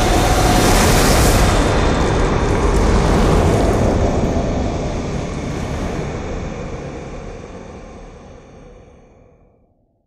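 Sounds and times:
deep rumble of flames: 0:00.0 - 0:08.9.

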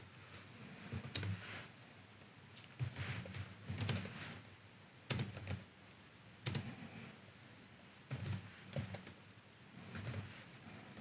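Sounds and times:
typing on computer keyboard: 0:01.0 - 0:01.4, 0:02.8 - 0:04.5, 0:05.1 - 0:06.7, 0:08.1 - 0:09.2, 0:09.9 - 0:10.3.

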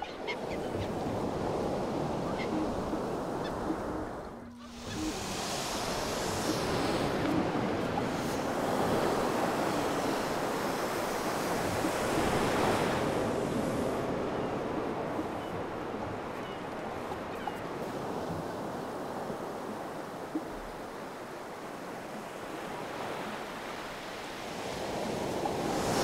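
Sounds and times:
ocean surf on beach: 0:00.0 - 0:26.0.

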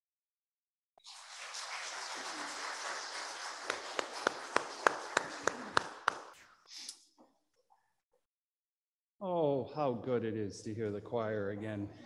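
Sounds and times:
congregation applauding: 0:01.1 - 0:06.4
sharp hand claps close by: 0:01.7 - 0:06.4.

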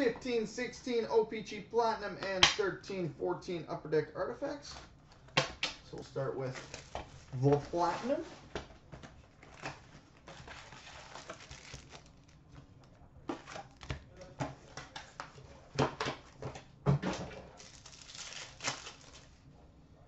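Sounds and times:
card pack wrappers crinkling: 0:09.3 - 0:12.5, 0:17.5 - 0:19.4.

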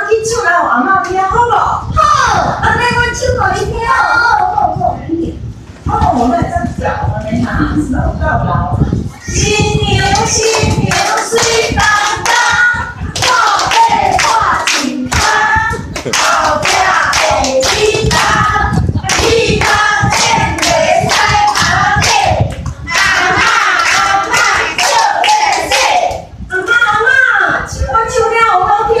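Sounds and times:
group singing: 0:09.7 - 0:26.2.

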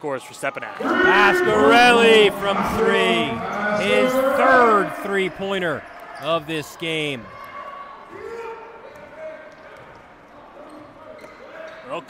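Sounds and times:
faint shouts and calls: 0:00.8 - 0:05.8.

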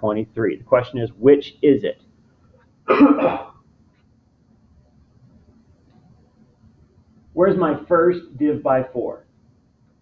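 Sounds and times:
man coughing: 0:02.9 - 0:03.5.

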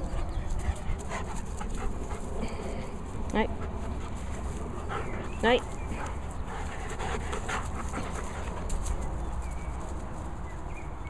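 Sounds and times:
dog panting: 0:00.0 - 0:09.7.

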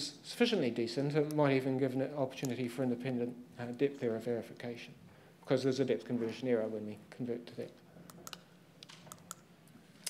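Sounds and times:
faint irregular clicks: 0:07.7 - 0:09.8.

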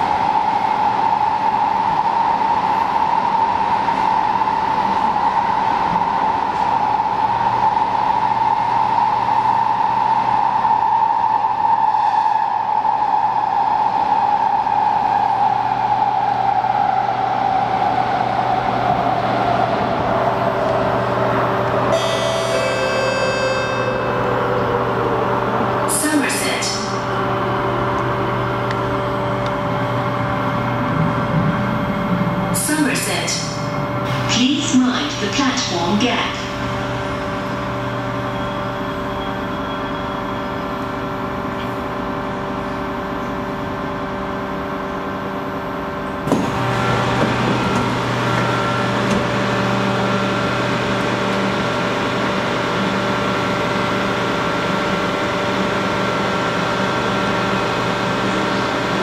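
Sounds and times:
train rolling rumble: 0:00.0 - 0:59.0
train motor whine: 0:46.1 - 0:59.0.

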